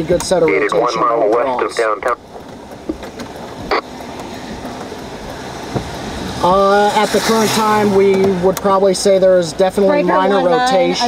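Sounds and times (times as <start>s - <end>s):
storm rushing in car cabin: 0.0s - 8.8s.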